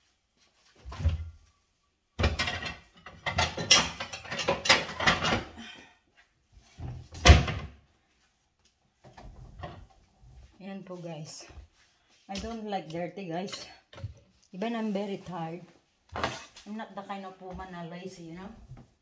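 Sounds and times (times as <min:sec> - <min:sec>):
items clattering in cupboard: 0:02.2 - 0:05.7, 0:06.6 - 0:07.8, 0:16.1 - 0:16.7.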